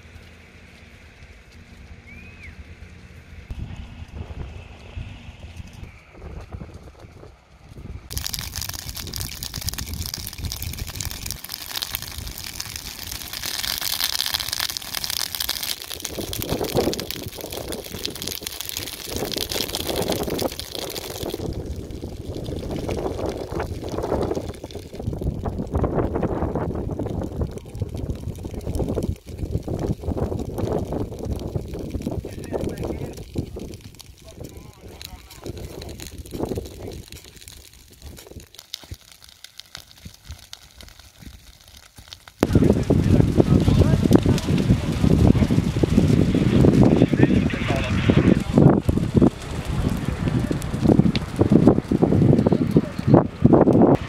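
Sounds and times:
brush fire crackling: 0:00.0 - 0:54.0
wind on microphone: 0:03.5 - 0:11.4, 0:15.9 - 0:37.4, 0:42.4 - 0:54.0.

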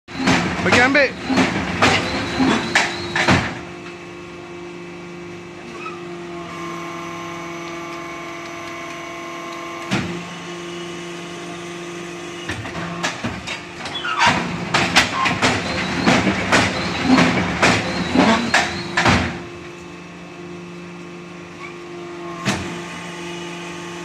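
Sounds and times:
metal clanks and knocks: 0:00.1 - 0:03.6, 0:12.6 - 0:19.3
brick machine humming: 0:00.1 - 0:24.0.

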